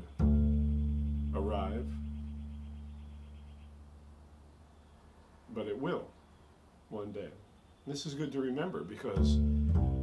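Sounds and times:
double bass plucked note: 0.0 - 3.9, 9.1 - 10.0.

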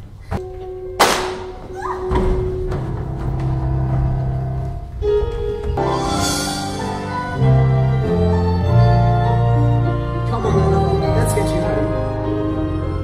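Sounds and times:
dramatic orchestral underscore: 1.2 - 13.0.

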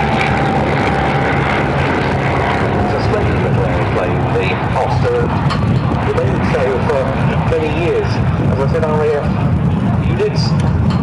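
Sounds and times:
steady low rumble: 0.0 - 11.0
man talking over loudspeaker: 2.8 - 5.4, 6.0 - 10.6.

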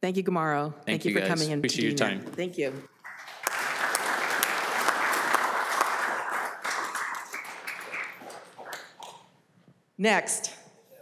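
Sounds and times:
audience applauding: 2.9 - 9.3.

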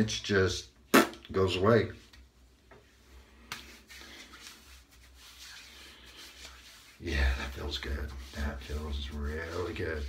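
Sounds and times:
hands rubbing skin rustle: 2.0 - 10.0.

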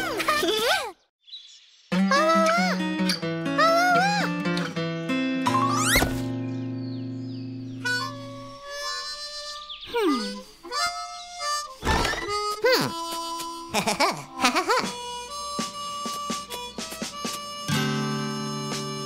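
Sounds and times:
cartoon music with harmonica lead: 2.0 - 19.0.

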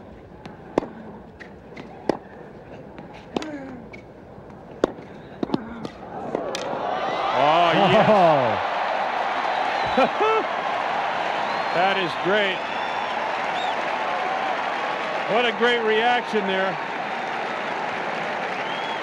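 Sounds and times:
tennis ball hit by racket: 0.4 - 2.3, 3.0 - 4.1, 4.7 - 6.7
crowd cheering and shouting: 6.0 - 19.0.

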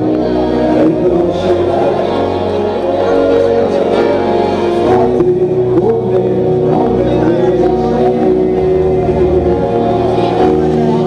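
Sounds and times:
guitar playing chords: 0.0 - 11.0
keyboard playing chords: 0.0 - 11.0.

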